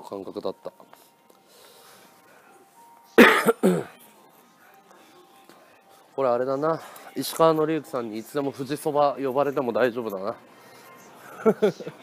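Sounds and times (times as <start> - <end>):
man coughing: 3.2 - 3.9.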